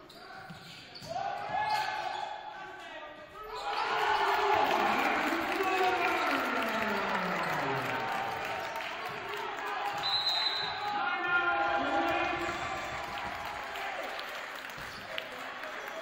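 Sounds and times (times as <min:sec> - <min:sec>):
voices in a gym: 0:00.0 - 0:16.0
referee's whistle: 0:10.0 - 0:10.9.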